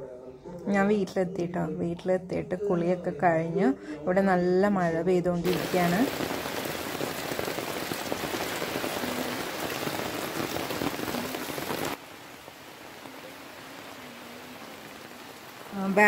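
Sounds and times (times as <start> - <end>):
hose water splashing on plants: 5.5 - 16.0.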